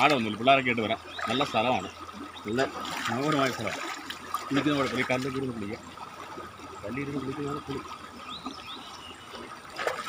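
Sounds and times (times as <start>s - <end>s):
water trickling over rocks: 0.0s - 10.0s
water splash: 1.1s - 6.6s, 9.3s - 10.0s.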